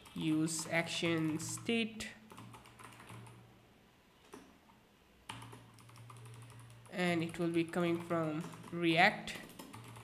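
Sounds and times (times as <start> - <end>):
keyboard typing: 0.0 - 3.4, 4.2 - 10.0.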